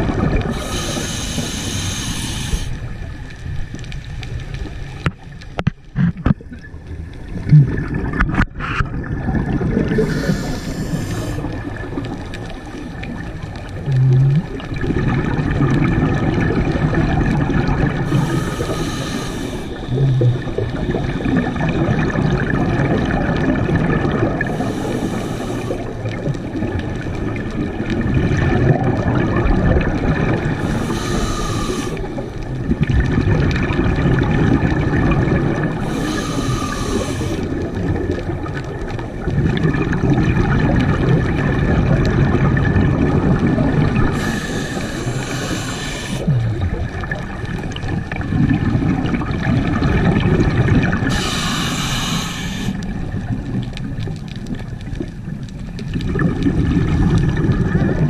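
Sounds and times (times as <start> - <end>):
bubbling exhaled air: 0.0 - 3.8, 5.9 - 58.0
hissing regulator inhales: 0.5 - 2.9, 10.0 - 11.6, 18.0 - 20.0, 24.5 - 26.0, 30.6 - 32.4, 35.8 - 37.5, 44.1 - 46.4, 51.1 - 52.8.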